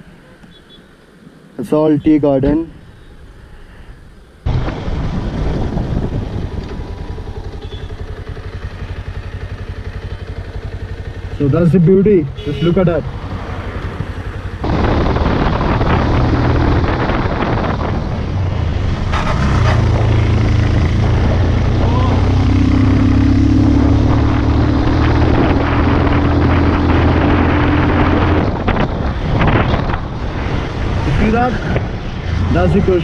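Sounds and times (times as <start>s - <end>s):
wind rushing over microphone: 4.4s - 7.6s, 12.9s - 33.0s
motorcycle engine running: 4.5s - 30.2s.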